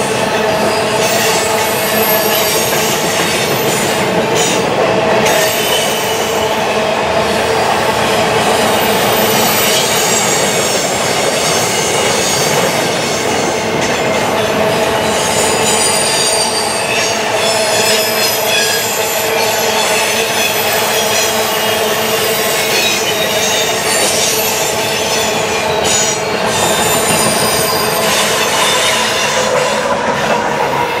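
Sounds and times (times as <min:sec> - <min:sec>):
train wheels rushing on rail: 0:00.0 - 0:31.0
high wheel flange squeal: 0:14.3 - 0:31.0.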